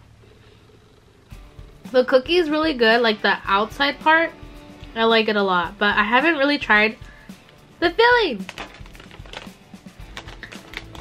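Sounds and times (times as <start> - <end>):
plastic tray crackling: 8.4 - 11.0.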